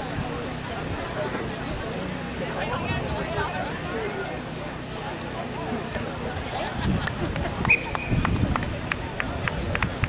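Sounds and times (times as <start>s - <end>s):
distant voices of players and spectators: 0.0s - 10.0s.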